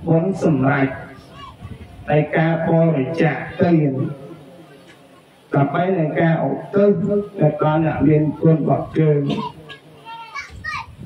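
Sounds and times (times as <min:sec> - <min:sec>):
man speaking: 0:00.0 - 0:01.3, 0:02.1 - 0:04.8, 0:05.5 - 0:09.8
child calling out: 0:01.0 - 0:01.8, 0:09.2 - 0:11.0.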